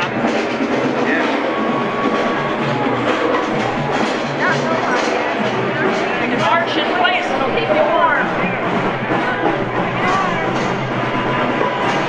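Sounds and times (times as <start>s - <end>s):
snare and bass drums playing: 0.0s - 12.0s.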